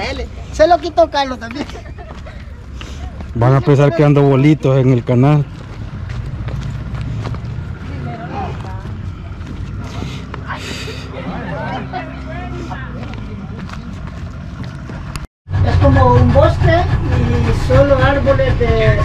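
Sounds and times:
voices talking: 0.0s - 19.0s
low hum: 1.9s - 19.0s
outboard motor drone: 15.5s - 19.0s.

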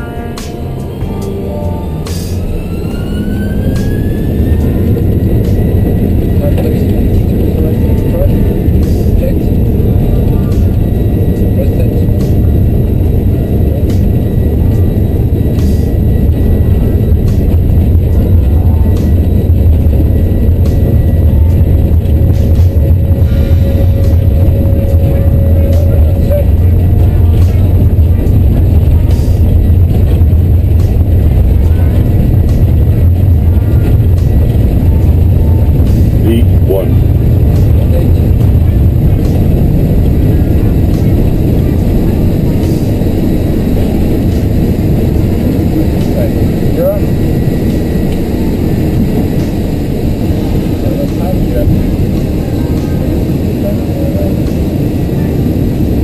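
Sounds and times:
jet engines rumbling at takeoff: 0.0s - 56.0s.

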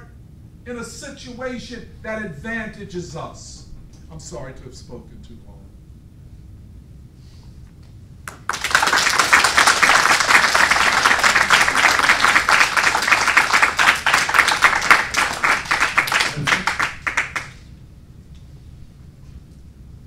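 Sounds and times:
audience applauding: 8.3s - 17.6s.

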